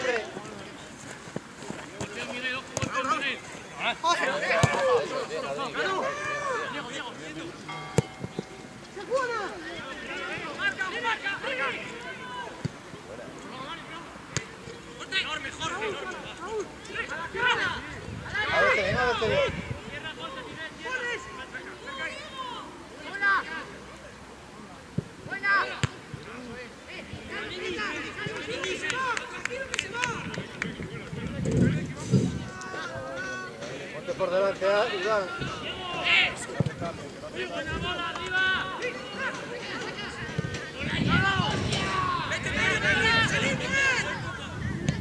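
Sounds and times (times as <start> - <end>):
voices shouting: 2.5 - 12.6, 14.8 - 23.8, 32.4 - 45.0
people shouting: 3.8 - 6.9, 40.9 - 44.6.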